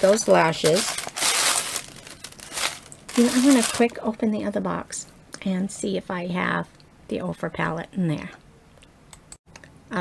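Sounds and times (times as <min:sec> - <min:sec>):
packaging crinkling: 0:00.0 - 0:04.0.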